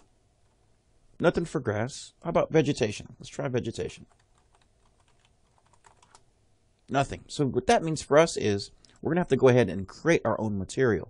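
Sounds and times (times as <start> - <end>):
typing on computer keyboard: 4.1 - 6.2.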